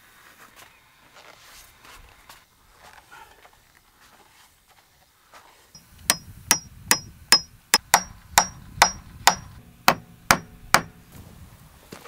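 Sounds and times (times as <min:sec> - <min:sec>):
hammer striking wooden rail: 0:05.8 - 0:11.0.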